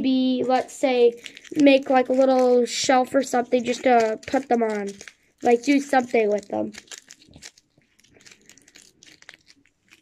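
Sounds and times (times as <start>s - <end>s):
foil wrapper crinkling: 0.5s - 10.0s
chocolate shell cracking: 1.1s - 10.0s.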